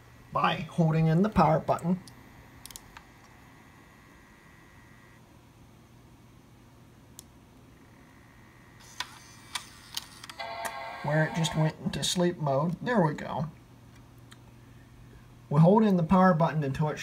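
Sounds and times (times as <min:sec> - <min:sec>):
thin high whine: 0:00.0 - 0:05.2
faint computer hum: 0:00.0 - 0:17.0.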